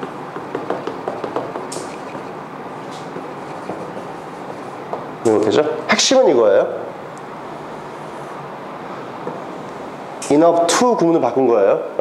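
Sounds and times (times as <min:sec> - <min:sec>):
marker writing on whiteboard: 0:00.0 - 0:05.7
steady background noise: 0:00.0 - 0:12.0.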